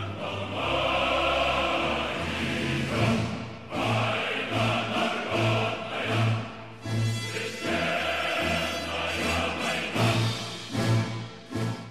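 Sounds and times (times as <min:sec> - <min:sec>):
choir singing held chords: 0:00.0 - 0:11.9.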